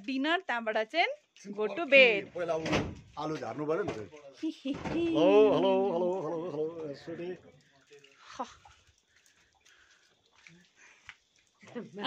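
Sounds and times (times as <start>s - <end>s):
woman talking: 0.0s - 2.2s, 4.4s - 5.4s.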